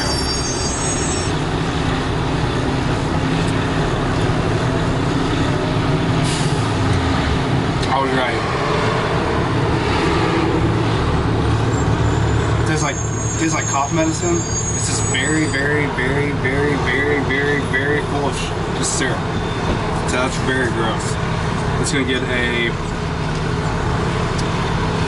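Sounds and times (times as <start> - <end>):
low outdoor rumble: 0.0 - 13.4.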